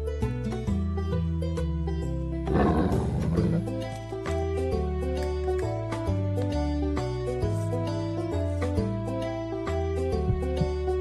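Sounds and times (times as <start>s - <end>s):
background music: 0.0s - 11.0s
dinosaur roar: 2.4s - 3.8s.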